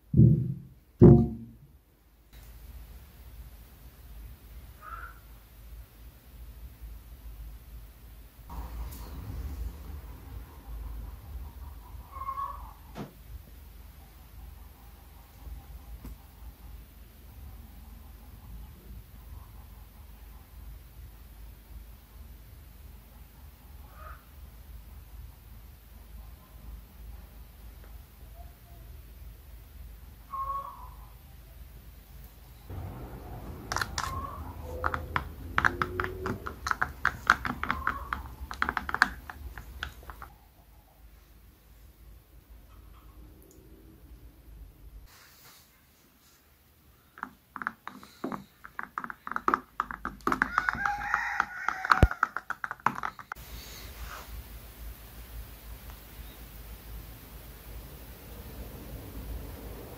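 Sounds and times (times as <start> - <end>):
steady low hum: 31.9 - 45.1
short animal call: 32.7 - 36.4
faint squeaks: 32.7 - 36.9
rod stirring in plastic cup: 33.6 - 40.3, 47.2 - 53.4.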